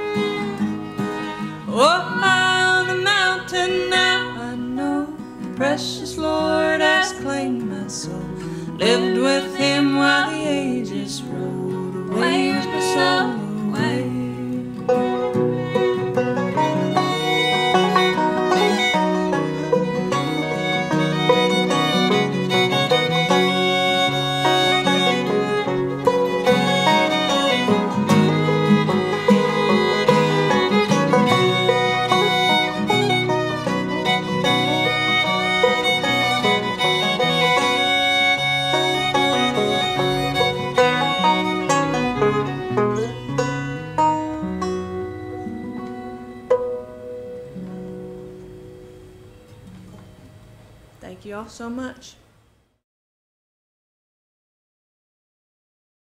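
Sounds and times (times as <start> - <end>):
bluegrass string trio playing: 0.0 - 50.7.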